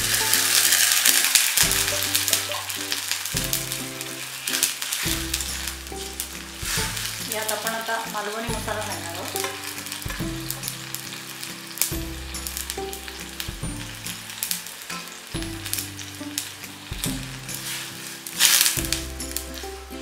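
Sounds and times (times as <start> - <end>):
ladle stirring in oil: 0.0 - 20.0
onion sizzling in hot oil: 0.0 - 20.0.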